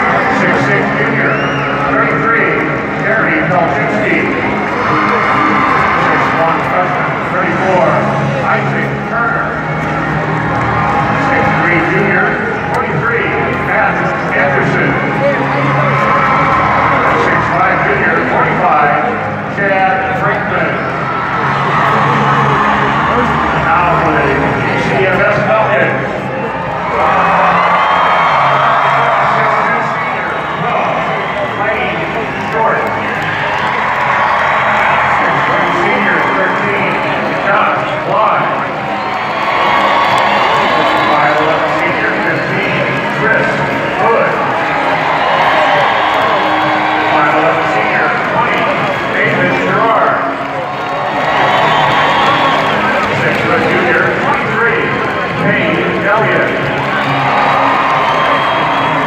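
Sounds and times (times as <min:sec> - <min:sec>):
crowd cheering and shouting: 0:00.0 - 0:59.0
music: 0:00.0 - 0:59.0.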